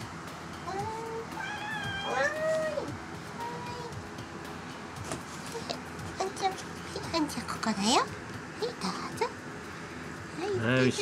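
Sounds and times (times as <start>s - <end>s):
cat meowing: 1.3s - 2.9s.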